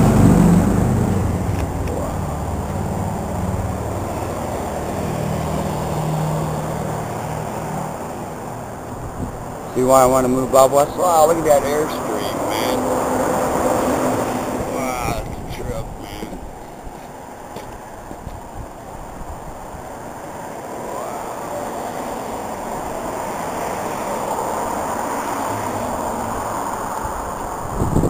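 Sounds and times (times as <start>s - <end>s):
wind rushing over microphone: 0.0s - 28.0s.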